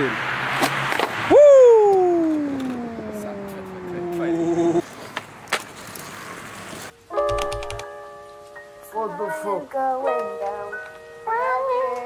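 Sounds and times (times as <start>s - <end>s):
tone sliding downward: 1.3s - 4.8s.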